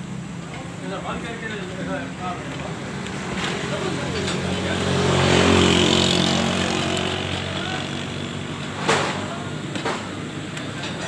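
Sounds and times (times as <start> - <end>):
vehicle engine passing: 0.0 - 10.5.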